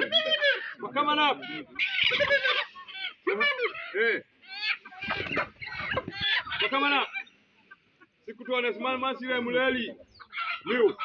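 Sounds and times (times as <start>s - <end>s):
chickens squawking and clucking: 0.0s - 11.0s
people's voices: 0.0s - 11.0s.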